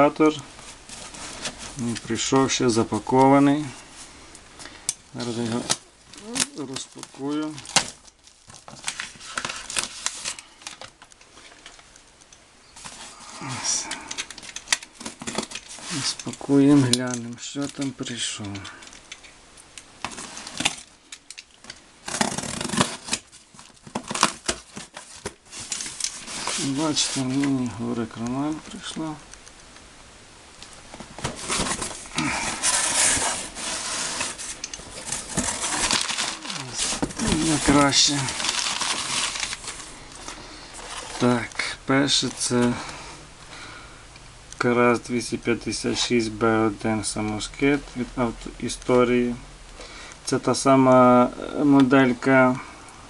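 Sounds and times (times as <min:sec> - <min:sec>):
hands rustling cardboard: 0:00.0 - 0:04.0, 0:22.0 - 0:29.2, 0:30.9 - 0:41.6
box cutter slitting tape: 0:22.0 - 0:23.3.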